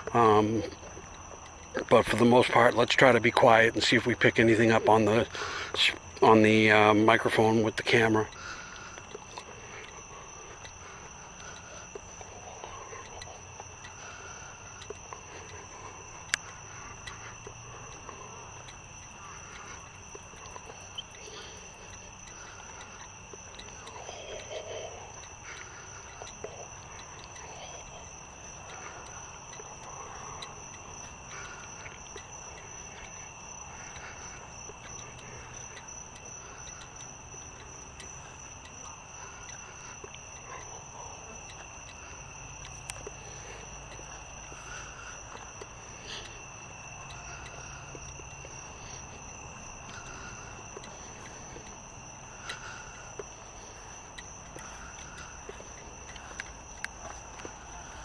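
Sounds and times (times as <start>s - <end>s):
crickets trilling: 0.0s - 58.0s.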